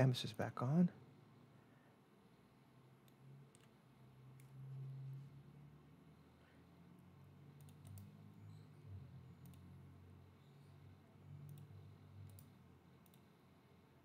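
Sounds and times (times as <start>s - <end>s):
low room hum: 0.0s - 14.0s
computer mouse clicks: 3.0s - 4.6s, 7.5s - 9.8s, 11.4s - 13.4s.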